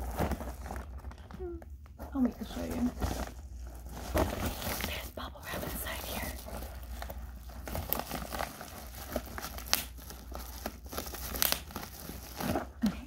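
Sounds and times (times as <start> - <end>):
padded mailer crinkling: 2.2 - 12.9.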